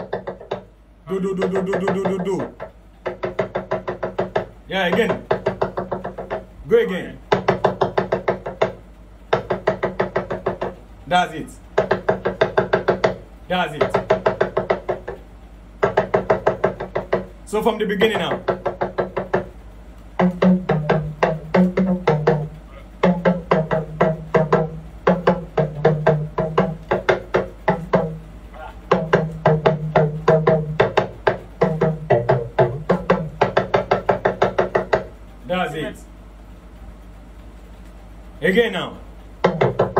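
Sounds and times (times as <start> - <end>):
talking drum strokes: 0.2 - 2.8, 3.4 - 37.3.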